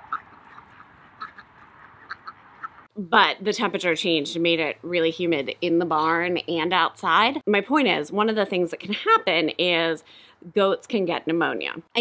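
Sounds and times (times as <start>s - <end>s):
ducks quacking: 0.0s - 2.9s.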